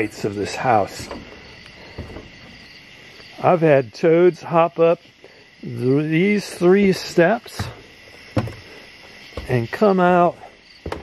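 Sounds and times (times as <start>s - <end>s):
night insects chorus: 0.0s - 11.0s
soft thump: 7.6s - 8.7s.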